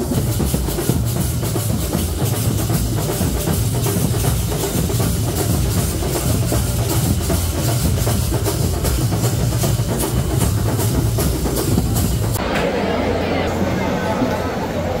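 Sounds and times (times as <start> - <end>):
loud fast drumming: 0.0 - 12.5
large crowd noise: 0.0 - 15.0.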